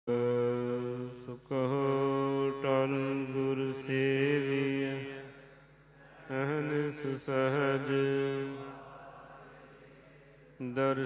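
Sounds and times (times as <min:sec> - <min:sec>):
person chanting: 0:00.1 - 0:11.0.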